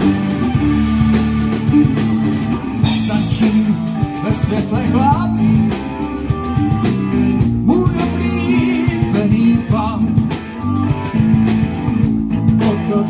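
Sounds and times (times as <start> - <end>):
bass guitar: 0.0 - 13.0
drum kit: 0.0 - 13.0
electric guitar with bent notes: 0.0 - 13.0.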